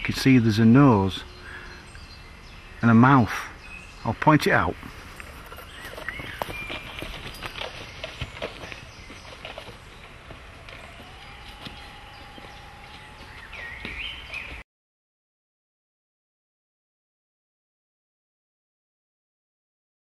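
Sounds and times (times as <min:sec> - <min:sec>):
faint bird calls: 0:00.0 - 0:04.1
footsteps crunching dry leaves: 0:04.8 - 0:14.6.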